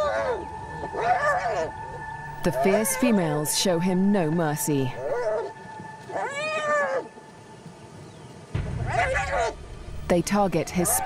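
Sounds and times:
hyenas crying out: 0.0s - 3.5s, 6.1s - 7.1s, 8.9s - 9.6s
low rumble: 8.5s - 11.0s.

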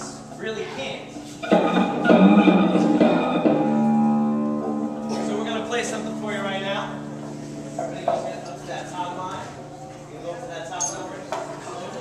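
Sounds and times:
electric guitar through amplifier: 1.1s - 10.1s.

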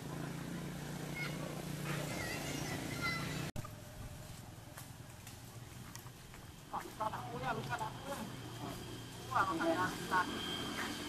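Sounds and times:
steady low hum: 3.6s - 11.0s.

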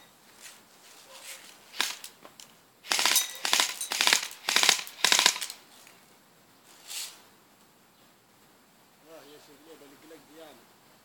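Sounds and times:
airsoft rifle automatic bursts: 1.7s - 2.1s, 2.8s - 5.6s.

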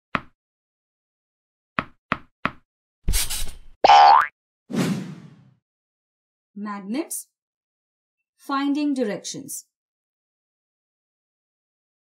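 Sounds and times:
springy boing: 3.9s - 4.3s.

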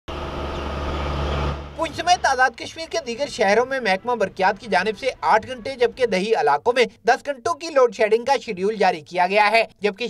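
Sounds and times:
small truck engine running: 0.1s - 4.6s
man's voice: 1.8s - 10.0s.

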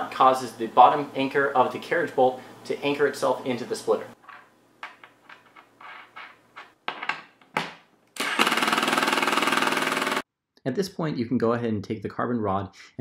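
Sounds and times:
impact driver hammering: 8.2s - 10.2s.

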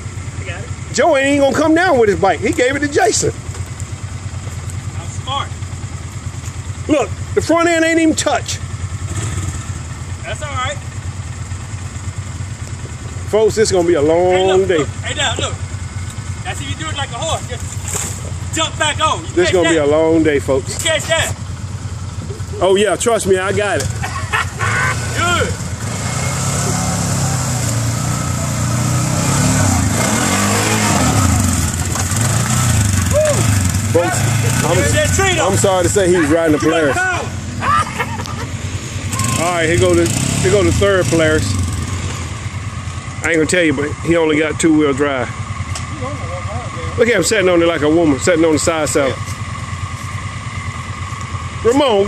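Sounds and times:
atv engine idling: 0.0s - 52.0s
people shouting: 33.0s - 38.2s, 39.0s - 39.7s.

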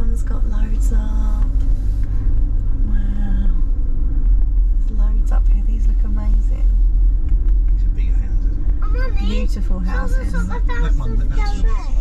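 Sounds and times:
car cabin road rumble: 0.0s - 12.0s
murmured voices: 7.8s - 12.0s.

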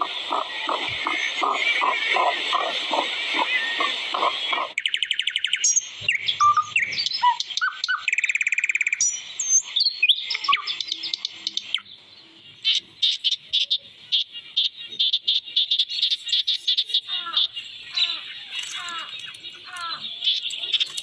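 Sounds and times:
sharp bird chips: 0.0s - 11.9s, 12.6s - 21.0s
birds calling and singing: 0.0s - 21.0s
buzzy bird trill: 0.0s - 21.0s.

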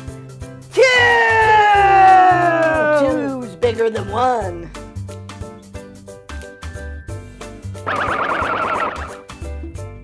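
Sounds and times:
bouncy children's music: 0.0s - 10.0s
cartoon warble sound effect: 7.9s - 9.2s.

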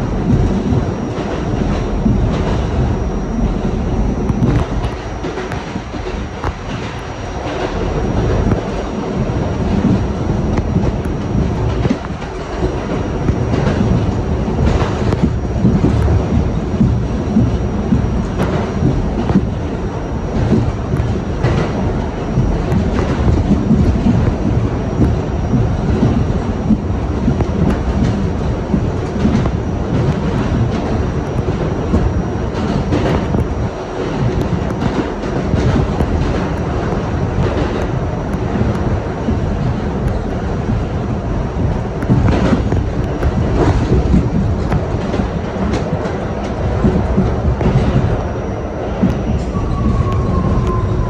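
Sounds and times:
train wheels rumbling on rails: 0.0s - 51.0s
wheels clicking over track: 0.0s - 51.0s.

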